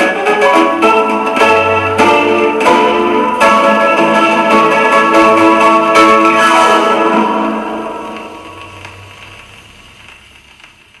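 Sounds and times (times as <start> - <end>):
gramophone piano music: 0.0 - 9.8
record surface hiss and crackle: 0.0 - 11.0
faint record clicks: 8.0 - 11.0.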